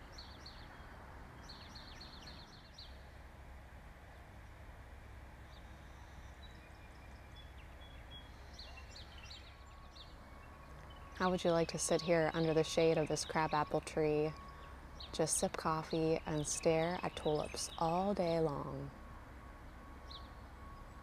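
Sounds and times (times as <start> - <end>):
birds chirping: 0.0 - 3.1, 5.4 - 19.0, 19.6 - 21.0
low background noise: 0.0 - 21.0.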